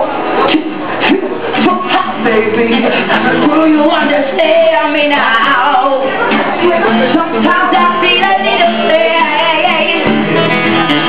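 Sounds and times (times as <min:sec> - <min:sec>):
acoustic guitar: 0:00.0 - 0:11.0
woman singing: 0:01.0 - 0:10.2.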